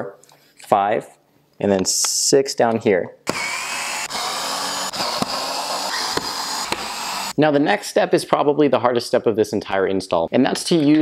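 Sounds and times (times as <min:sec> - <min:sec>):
cordless screwdriver whining: 0:03.3 - 0:07.4.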